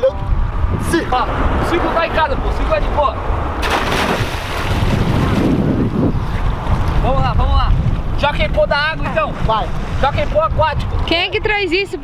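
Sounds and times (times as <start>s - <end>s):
wind rumble on microphone: 0.0s - 12.0s
splash into water: 3.6s - 5.9s
water settling: 3.6s - 7.0s.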